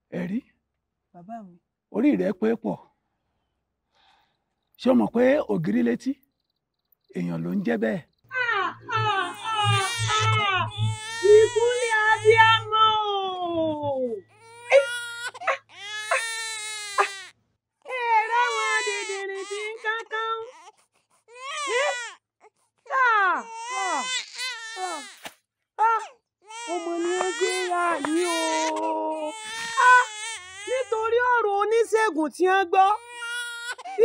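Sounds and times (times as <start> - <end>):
woman exclaiming: 8.3 - 14.9, 17.9 - 20.5, 21.7 - 22.0, 22.9 - 23.4
baby crying: 8.4 - 17.3, 17.9 - 22.2, 22.9 - 25.2, 25.8 - 31.1, 33.0 - 34.0.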